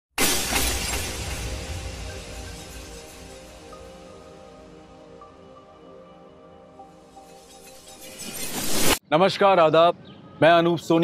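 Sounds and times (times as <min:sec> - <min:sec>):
glass shattering: 0:00.2 - 0:04.1, 0:07.3 - 0:09.0.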